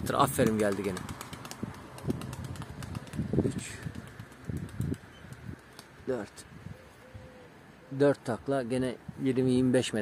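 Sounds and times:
pigeons cooing: 6.7 - 8.1.

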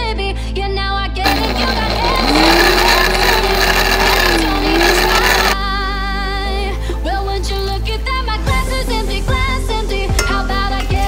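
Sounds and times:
electric blender grinding: 1.2 - 5.6
background music: 1.4 - 11.0.

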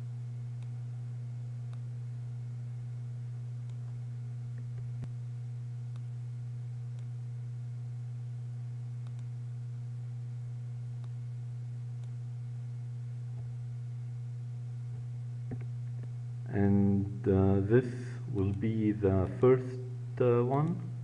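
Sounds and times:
low electrical hum: 0.0 - 21.0
faint mouse clicks: 9.0 - 9.3.

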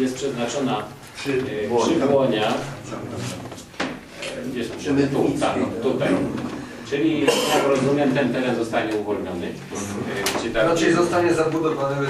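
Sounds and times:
men talking: 0.0 - 12.0.

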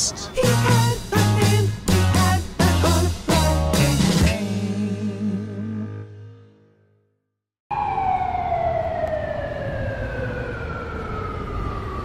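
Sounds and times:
siren winding down: 7.7 - 12.0.

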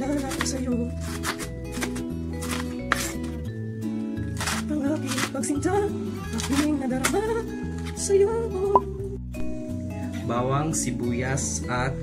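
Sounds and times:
cleaver chopping cabbage on board: 0.1 - 3.2, 4.4 - 5.4.

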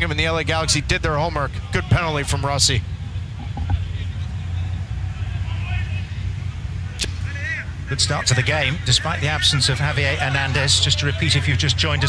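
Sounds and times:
low rumble of ambience: 0.0 - 12.0
faint distant shouts: 1.2 - 12.0.

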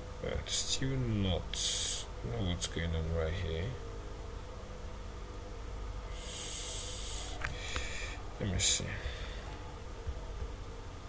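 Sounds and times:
low electrical hum: 0.0 - 11.0
person breathing out through nose: 6.1 - 8.2.

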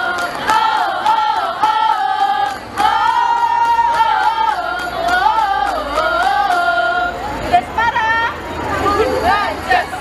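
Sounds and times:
crowd murmur: 0.0 - 10.0
women chanting a cheer: 0.0 - 10.0.

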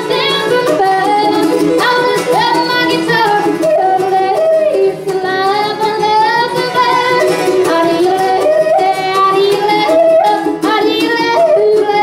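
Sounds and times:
acoustic guitar: 0.0 - 12.0
fiddle: 0.0 - 12.0
mandolin: 0.0 - 12.0.

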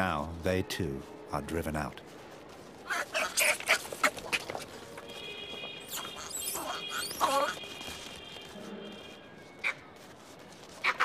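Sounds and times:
monkeys giving harsh calls: 2.8 - 4.7, 5.9 - 7.6.

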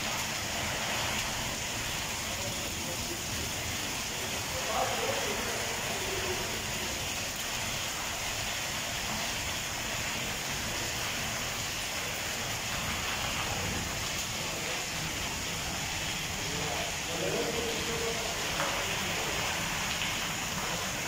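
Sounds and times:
steady rain falling: 0.0 - 21.0.

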